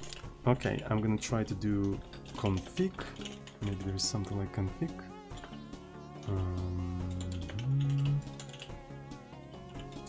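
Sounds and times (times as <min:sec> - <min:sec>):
computer keyboard typing: 0:00.0 - 0:04.4, 0:05.2 - 0:10.0
music with deep bass notes: 0:00.0 - 0:10.0.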